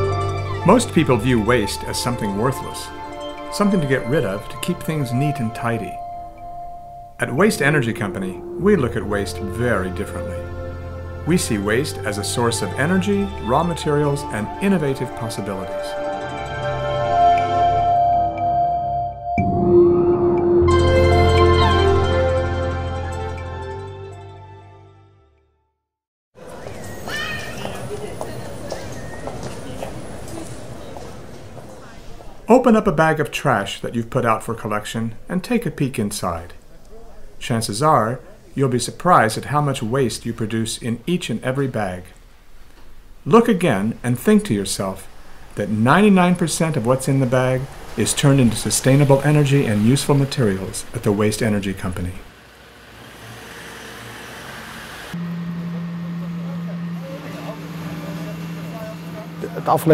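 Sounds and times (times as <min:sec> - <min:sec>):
voices: 0:07.2 - 0:10.5, 0:11.2 - 0:16.0, 0:26.4 - 0:42.2, 0:43.3 - 0:52.3, 0:55.3 - 0:59.9
footsteps on brick paving: 0:27.6 - 0:32.4
truck engine running: 0:44.5 - 0:59.9
steady background hum: 0:55.1 - 0:59.9.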